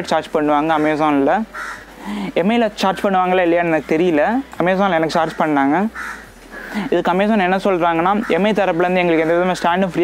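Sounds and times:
man talking: 0:00.0 - 0:01.5, 0:02.2 - 0:06.0, 0:06.8 - 0:10.0.

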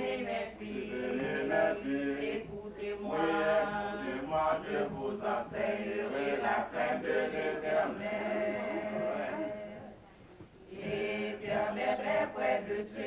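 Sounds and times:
choir singing a hymn: 0:00.0 - 0:10.0, 0:10.7 - 0:13.0.

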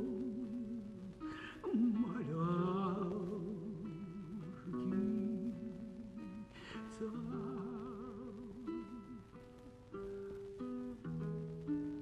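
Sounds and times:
man singing folk song: 0:00.0 - 0:09.6
plucked guitar notes: 0:00.0 - 0:12.0.

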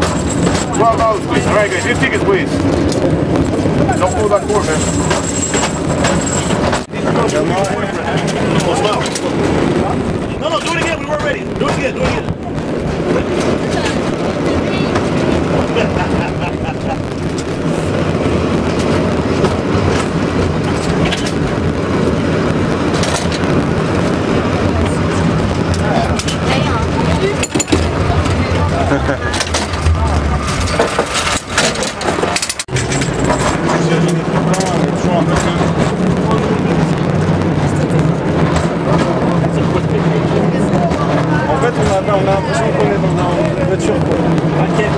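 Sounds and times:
clanks of car on rails: 0:00.0 - 0:03.2, 0:03.8 - 0:09.6, 0:10.5 - 0:12.4, 0:18.7 - 0:21.6, 0:22.9 - 0:23.6, 0:27.2 - 0:28.4, 0:29.3 - 0:39.9
cable car rumbling: 0:00.0 - 0:44.9
passengers' voices: 0:00.0 - 0:44.9.

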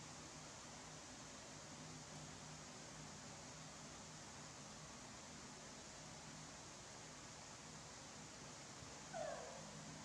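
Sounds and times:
faint room hiss: 0:00.0 - 0:10.0
baby monkey squeaky call: 0:09.2 - 0:09.6.

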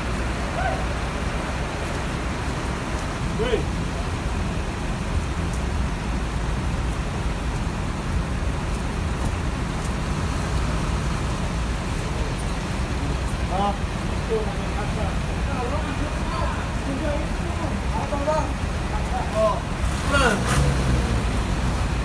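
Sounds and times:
bus and traffic engines rumbling: 0:00.0 - 0:22.0
steady rain: 0:00.0 - 0:22.0.

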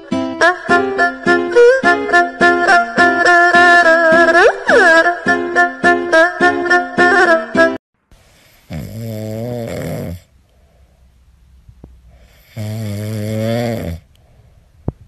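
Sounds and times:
music: 0:00.0 - 0:07.8.

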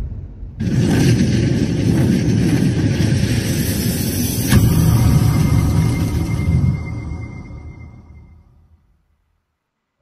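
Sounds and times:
deep noisy swell: 0:00.0 - 0:08.8
sharp hit: 0:00.0 - 0:09.0
thin steady high tone: 0:04.2 - 0:08.9.

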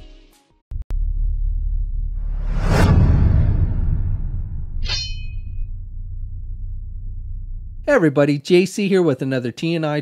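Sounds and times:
deep rumble: 0:00.8 - 0:07.9
whoosh sound effect: 0:02.2 - 0:05.2.

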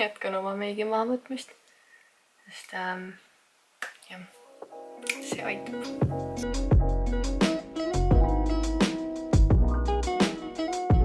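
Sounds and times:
music with plucked notes: 0:04.7 - 0:11.0.

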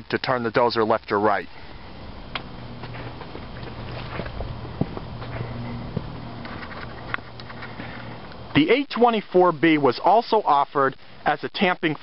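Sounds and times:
steady low hum: 0:00.0 - 0:12.0
footsteps crunching on gravel: 0:02.6 - 0:08.3.

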